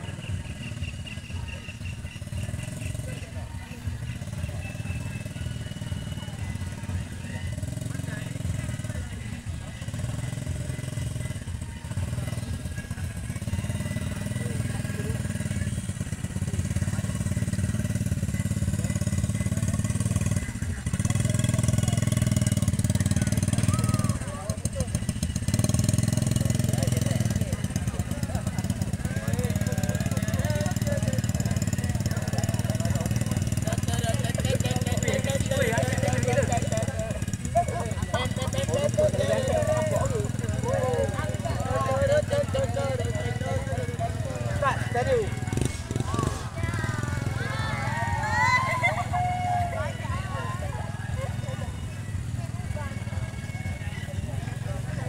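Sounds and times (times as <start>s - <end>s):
crowd voices and shouting: 0.0s - 55.0s
small motorcycle engine running: 0.0s - 55.0s.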